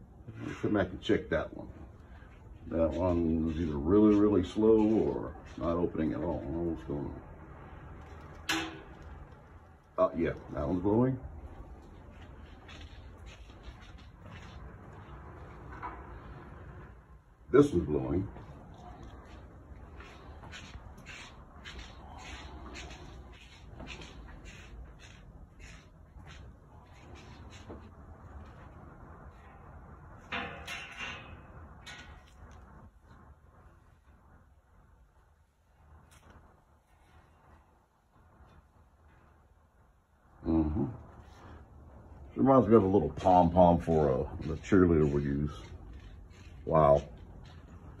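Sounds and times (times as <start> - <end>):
air blowing from ceiling vent: 0.0 - 42.8.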